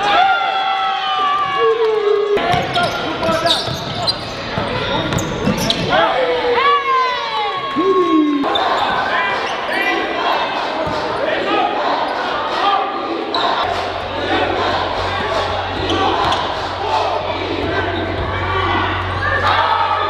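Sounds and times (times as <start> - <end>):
voices echoing in a hall: 0.0 - 20.0
sneakers squeaking on hardwood: 2.5 - 6.0.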